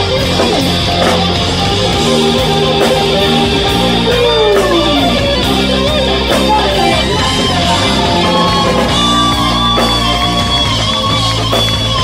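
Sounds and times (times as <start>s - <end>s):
electric guitar lead with slide: 0.0s - 12.0s
live rock band: 0.0s - 12.0s.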